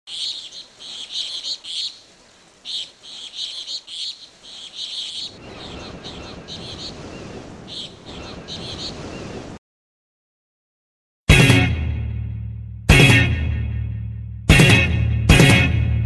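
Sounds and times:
low steady noise: 0:00.1 - 0:06.3
birds chirping: 0:00.1 - 0:09.6.

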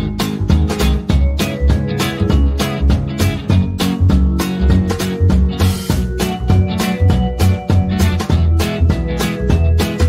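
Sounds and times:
instrumental music with drum beat: 0:00.0 - 0:10.0.

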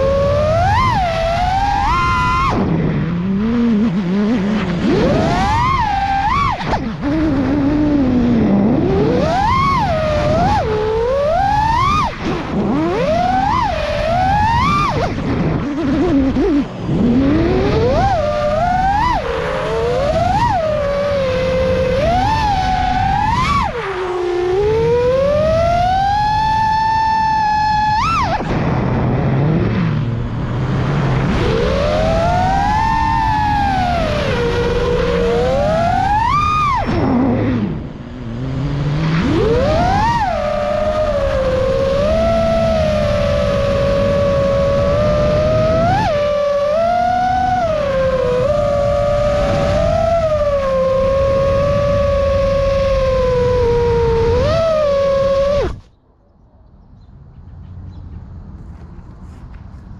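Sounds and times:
quadcopter motors whining: 0:00.0 - 0:56.0.

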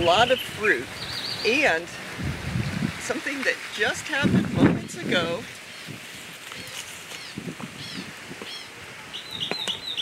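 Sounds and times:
bird chirps: 0:00.4 - 0:01.6, 0:06.6 - 0:10.0.

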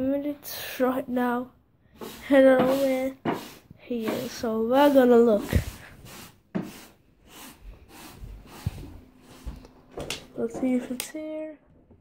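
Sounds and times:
phone rustling and rubbing: 0:02.0 - 0:09.9.

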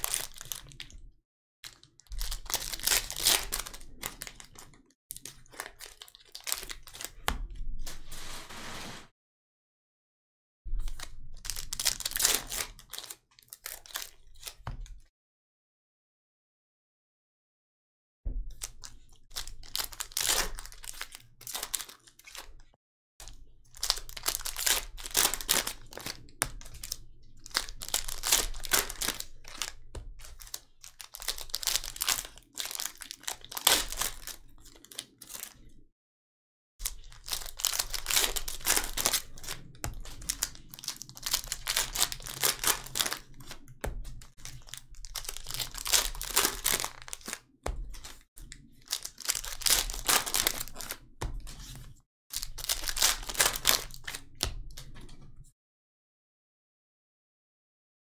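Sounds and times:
foil wrappers crinkling and tearing: 0:00.0 - 0:00.9, 0:01.6 - 0:07.2, 0:10.9 - 0:14.6, 0:18.6 - 0:22.6, 0:23.2 - 0:35.7, 0:36.8 - 0:51.0, 0:51.6 - 0:54.3.

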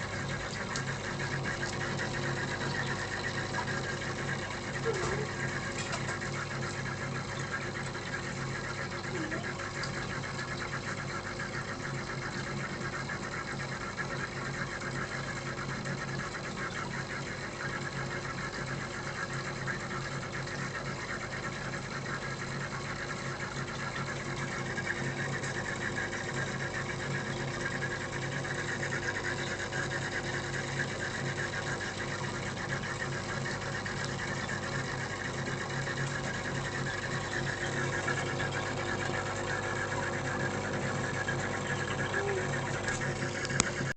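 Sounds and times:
aquarium pump humming: 0:00.0 - 0:43.9.

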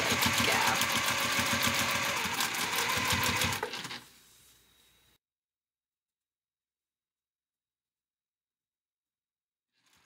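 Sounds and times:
electric sewing machine stitching: 0:00.0 - 0:04.0, 0:09.8 - 0:10.0.

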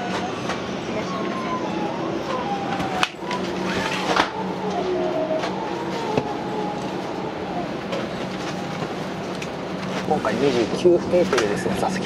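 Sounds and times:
air-conditioning hiss: 0:02.1 - 0:12.0.

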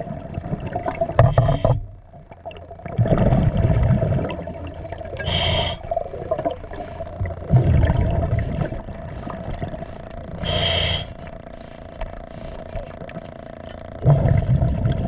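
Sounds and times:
exhaled bubbles gushing: 0:00.0 - 0:11.2, 0:14.0 - 0:15.0
scuba regulator hissing inhalations: 0:01.2 - 0:01.9, 0:05.2 - 0:06.0, 0:10.3 - 0:12.7.

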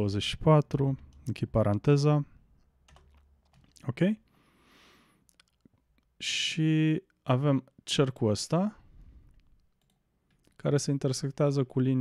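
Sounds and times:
computer keyboard keystrokes: 0:02.8 - 0:03.8, 0:09.6 - 0:10.6.

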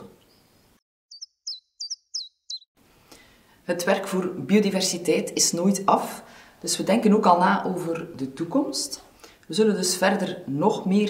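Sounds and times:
short high bird chirps: 0:00.2 - 0:02.8.

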